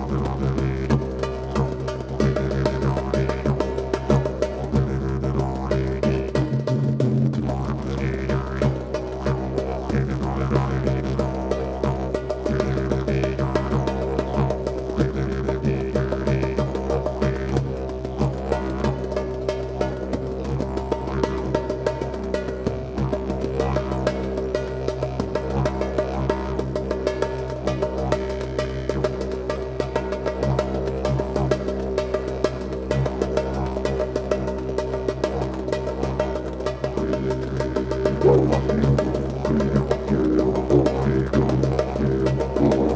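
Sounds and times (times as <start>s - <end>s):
didgeridoo drone: 0.0s - 42.9s
hand drum hits: 35.7s - 42.9s.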